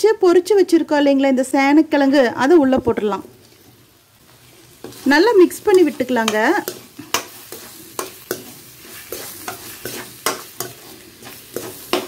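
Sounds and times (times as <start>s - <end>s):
oil sizzling: 1.7s - 12.0s
metal spatula scraping pan: 4.6s - 12.0s.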